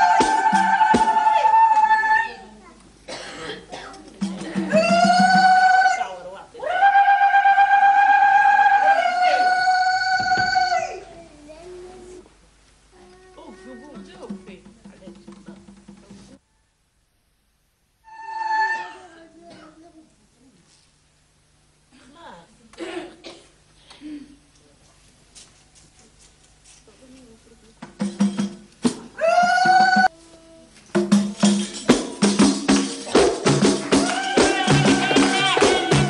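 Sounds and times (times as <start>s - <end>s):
hand drum beats: 0.0s - 1.7s, 4.1s - 5.9s, 13.9s - 16.4s, 27.8s - 30.1s, 30.9s - 36.0s
women singing a long note: 0.0s - 2.5s, 4.6s - 11.0s, 33.8s - 36.0s
woman's high-pitched vocal cry: 18.3s - 19.4s.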